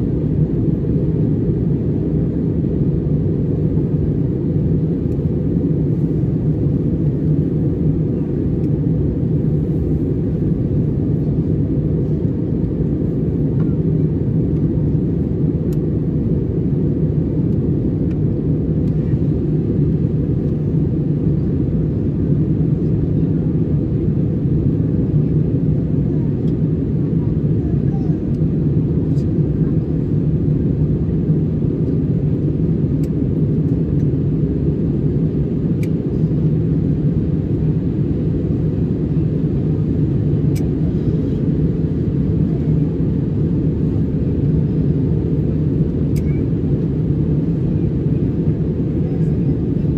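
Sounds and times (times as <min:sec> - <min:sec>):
airliner cabin engine rumble: 0:00.0 - 0:49.9.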